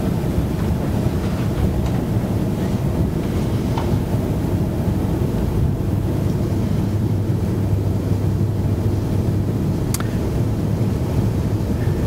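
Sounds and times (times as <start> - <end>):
low room rumble: 0.0 - 12.0
faint click: 9.9 - 10.1.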